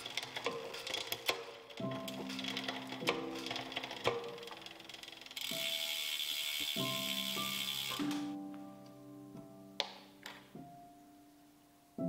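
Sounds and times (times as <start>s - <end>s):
bicycle freehub ratcheting: 0.0s - 8.3s
background music: 0.0s - 12.0s.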